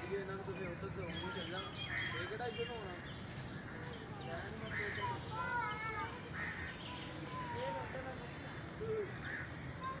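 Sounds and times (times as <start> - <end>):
faint distant voices: 0.0 - 10.0
crow-like caws: 1.9 - 2.3, 4.6 - 5.2, 6.3 - 6.9, 9.1 - 9.6.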